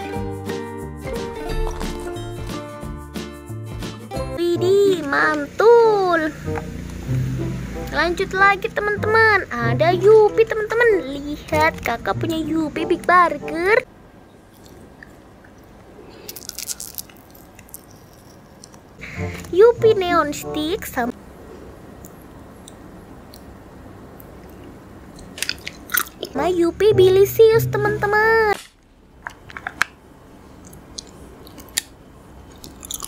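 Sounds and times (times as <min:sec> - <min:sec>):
chewing mouth clicks and smacks: 0:14.5 - 0:18.9, 0:32.5 - 0:33.0
eating sounds: 0:14.5 - 0:19.5, 0:32.4 - 0:33.0.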